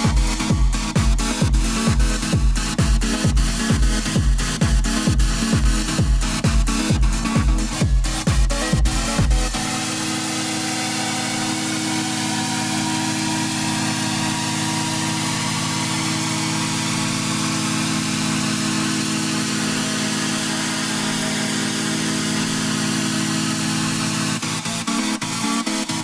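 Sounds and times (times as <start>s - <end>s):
rhythmic percussion hits: 0.0s - 9.8s
droning synth chord: 0.0s - 26.0s.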